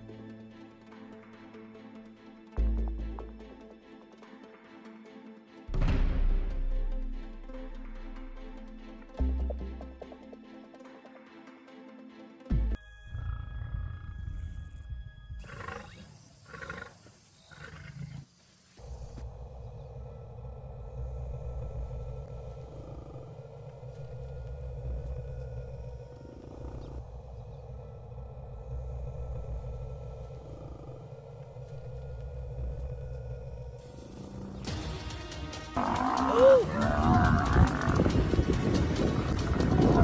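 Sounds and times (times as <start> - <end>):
deep low rumble: 19.0 - 34.1.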